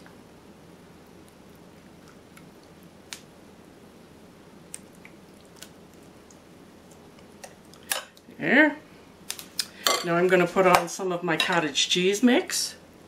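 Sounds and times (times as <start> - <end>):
low room noise: 0.0 - 13.0
wet sauce squishing: 4.6 - 8.3.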